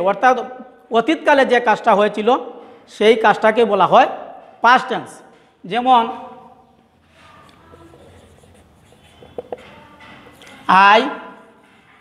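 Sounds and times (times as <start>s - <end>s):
marker scratching on whiteboard: 7.0s - 10.8s.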